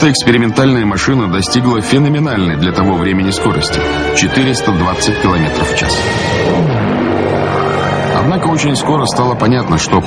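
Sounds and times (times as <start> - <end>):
propeller aircraft engine droning: 0.0 - 10.0.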